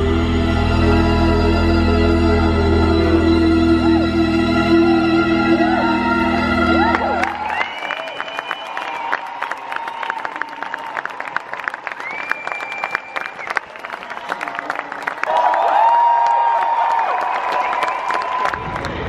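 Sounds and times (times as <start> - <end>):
crowd cheering: 1.4 - 19.0
audience clapping: 6.7 - 19.0.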